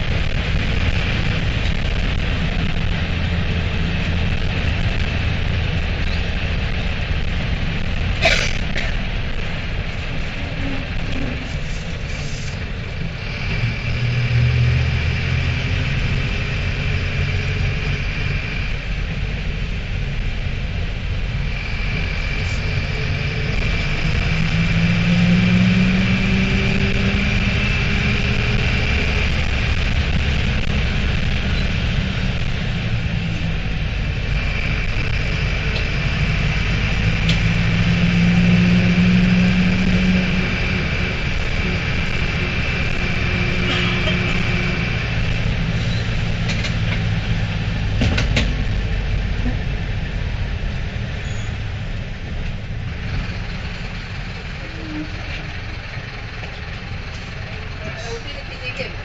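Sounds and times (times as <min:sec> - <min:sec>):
diesel engine running: 0:00.0 - 0:59.0
steady high whine: 0:00.0 - 0:59.0.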